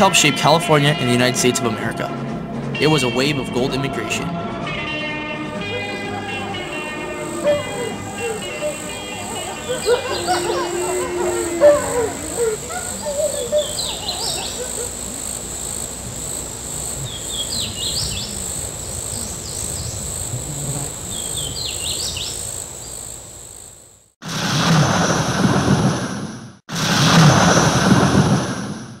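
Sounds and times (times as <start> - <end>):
insect drone: 5.4 - 25.6
bird chirps: 5.8 - 23.2.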